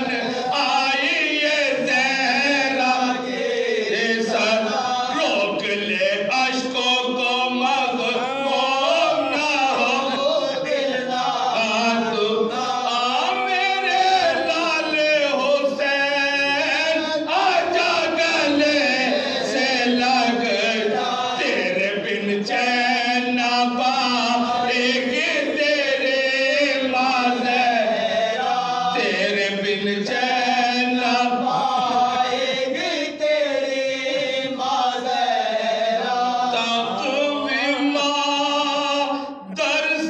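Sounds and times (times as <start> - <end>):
men chanting a lament: 0.0 - 40.0.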